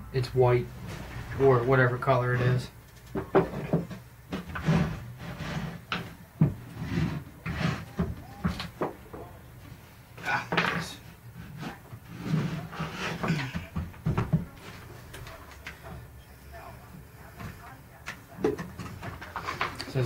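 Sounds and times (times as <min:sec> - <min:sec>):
drawers opening and shutting: 0:00.7 - 0:08.8.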